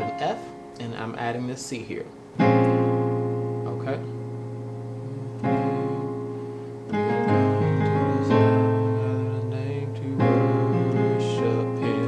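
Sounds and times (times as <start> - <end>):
piano playing slow chords: 0.0 - 1.5, 2.1 - 12.0.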